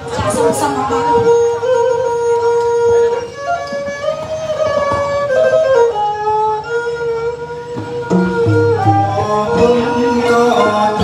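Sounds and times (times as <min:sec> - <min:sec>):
traditional ensemble music: 0:00.0 - 0:11.0.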